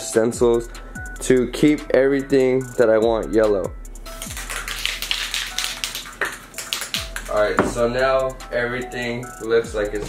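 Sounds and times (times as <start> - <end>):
spray can ball rattling: 4.1 - 8.0.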